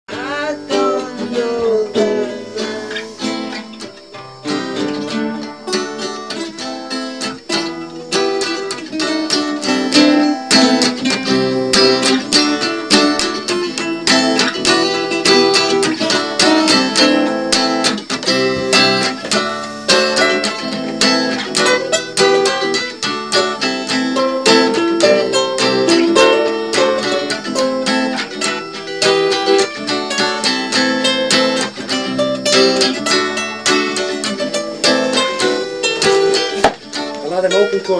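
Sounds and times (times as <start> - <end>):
guitar plucked and strummed: 0.1 - 37.9.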